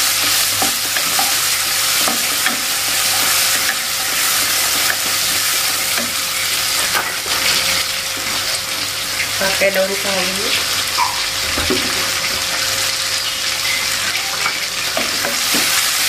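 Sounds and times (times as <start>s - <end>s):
food sizzling in hot oil: 0.0s - 16.0s.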